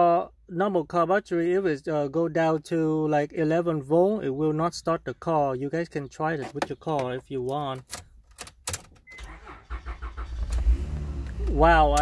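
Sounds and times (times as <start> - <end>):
car engine cranking: 7.8 - 12.0.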